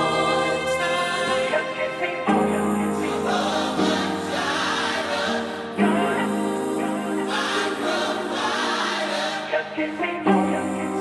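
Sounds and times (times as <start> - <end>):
choir-like sung vocals: 0.0 - 11.0.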